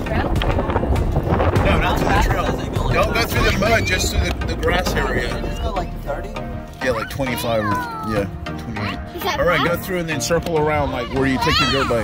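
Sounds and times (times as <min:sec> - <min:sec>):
people talking: 0:00.0 - 0:00.8, 0:01.6 - 0:08.2
wind buffeting microphone: 0:00.0 - 0:07.6.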